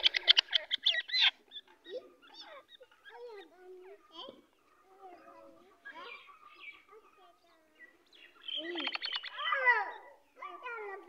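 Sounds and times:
bird squawking: 0.0s - 4.3s, 8.2s - 10.6s.

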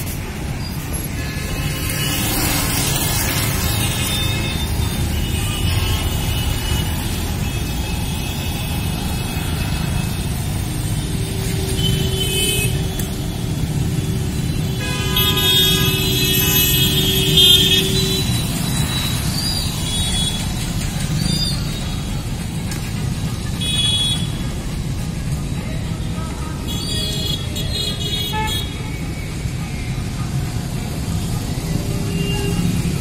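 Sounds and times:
rumble of passing vehicles: 0.0s - 33.0s
car horns: 11.0s - 19.2s, 23.6s - 24.4s.

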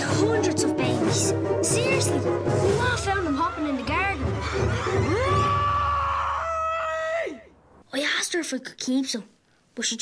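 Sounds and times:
woman screaming: 4.3s - 7.5s.

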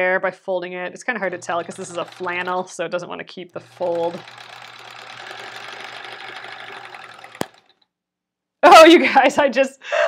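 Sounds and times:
sewing machine stitching: 1.2s - 7.8s.

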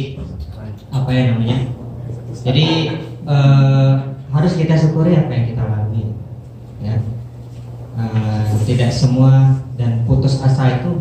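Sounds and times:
man speaking into a microphone: 0.0s - 7.3s, 8.0s - 11.0s.

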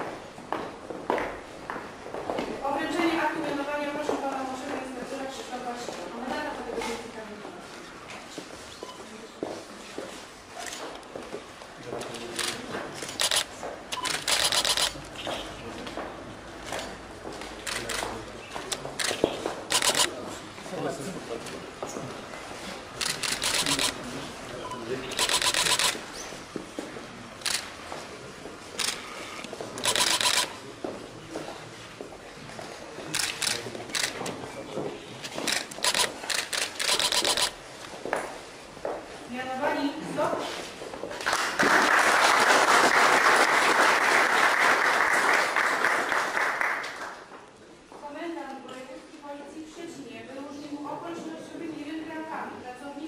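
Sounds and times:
brief beep: 8.8s - 9.1s
camera shutters clicking: 12.0s - 15.4s, 17.6s - 20.2s, 23.0s - 24.1s, 25.1s - 26.0s, 27.4s - 27.8s, 28.8s - 30.6s, 33.1s - 34.4s, 35.3s - 37.6s.

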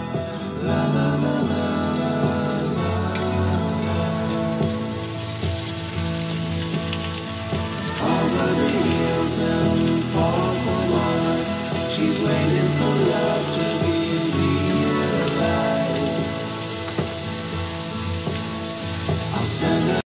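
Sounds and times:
background music: 0.0s - 20.0s
fish sizzling on grill pan: 1.2s - 20.0s.

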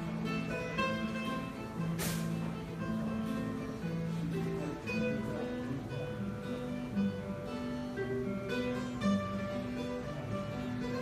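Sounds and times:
acoustic guitar strumming: 0.0s - 11.0s
mandolin: 0.0s - 11.0s.

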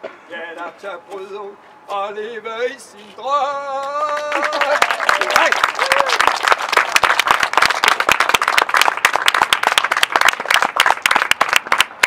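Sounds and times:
audience applauding: 4.0s - 12.0s.

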